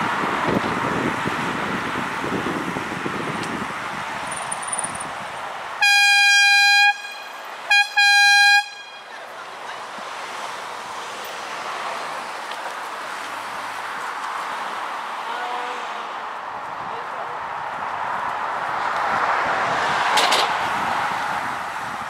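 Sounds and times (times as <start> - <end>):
wind and road rush: 0.0 - 22.0
loud horn blasts: 5.8 - 9.1.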